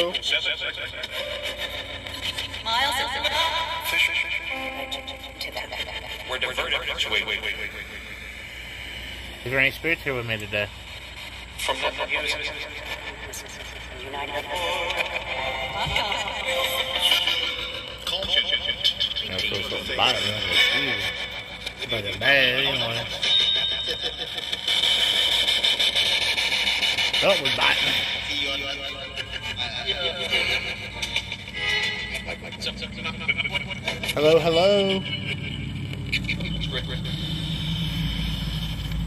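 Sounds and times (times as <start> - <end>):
broken voice and music fragments: 0.0 - 39.0
chopped noise and voice snippets: 26.9 - 37.4
low rumble: 30.2 - 39.0.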